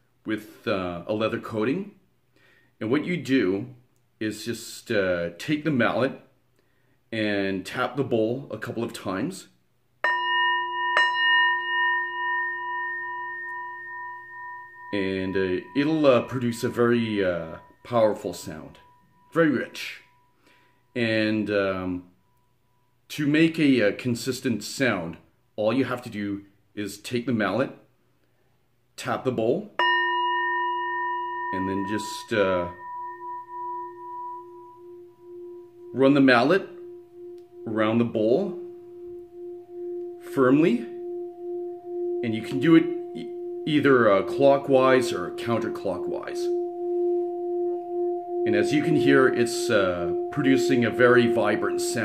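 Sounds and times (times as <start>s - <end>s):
singing bowl struck and ringing: 10.0s - 21.2s, 29.8s - 52.0s.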